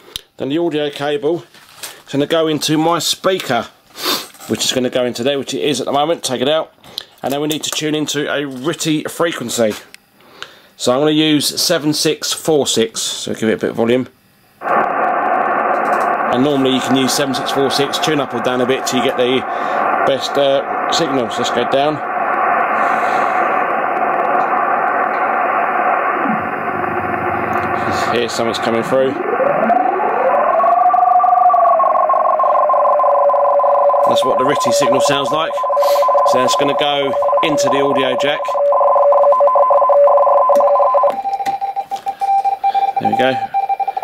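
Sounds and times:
shortwave radio hiss: 0:01.0 - 0:40.9
tone gliding down in pitch: 0:28.9 - 0:41.1.

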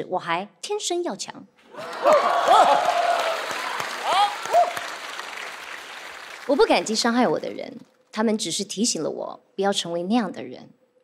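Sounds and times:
audience applauding: 0:01.7 - 0:07.8
audience laughing: 0:01.8 - 0:04.6.

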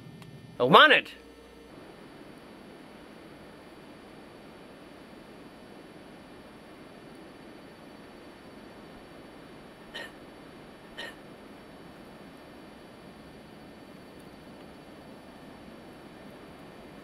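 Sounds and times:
faint steady hiss: 0:00.0 - 0:17.0.

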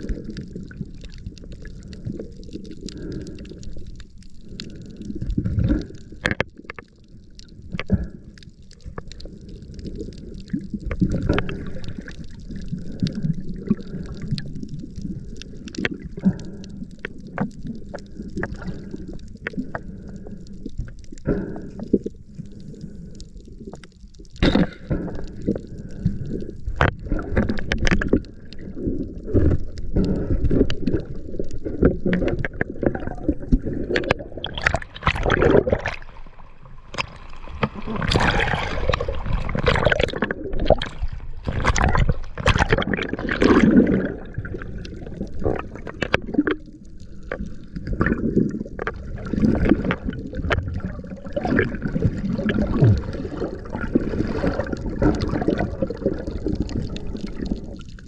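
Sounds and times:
water gurgling and sloshing: 0:00.0 - 0:58.0
churning water splash: 0:33.8 - 0:44.7, 0:49.1 - 0:57.5.

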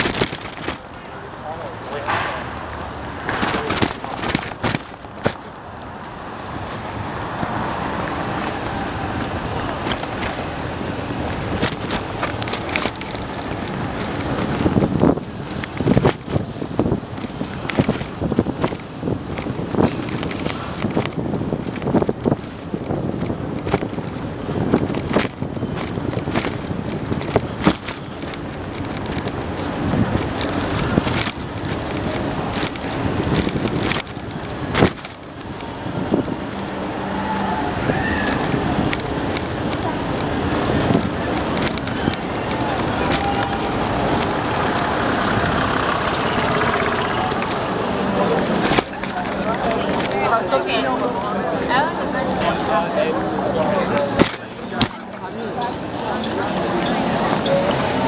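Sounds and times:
bicycle knocks and rattles: 0:00.0 - 0:05.7, 0:11.3 - 0:36.6
people's voices: 0:00.0 - 0:58.0
traffic: 0:00.0 - 0:58.0
wind on microphone: 0:02.5 - 0:55.2.

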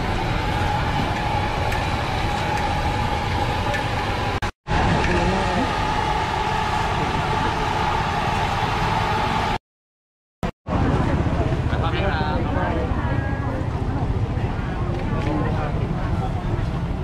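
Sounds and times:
engine drone: 0:00.0 - 0:09.6.

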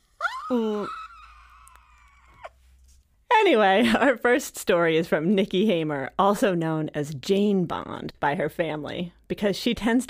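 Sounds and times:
woman squealing: 0:00.2 - 0:02.6.

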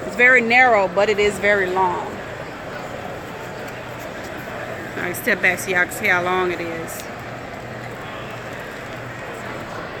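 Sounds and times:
constant low hum: 0:00.0 - 0:10.0
distant activity in large hall: 0:00.0 - 0:10.0.

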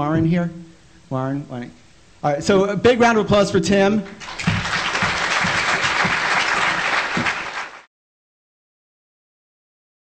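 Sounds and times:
audience clapping: 0:04.0 - 0:07.9.

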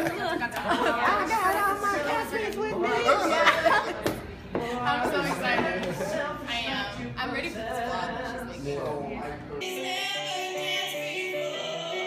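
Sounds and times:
musical theatre singing: 0:09.6 - 0:12.0.

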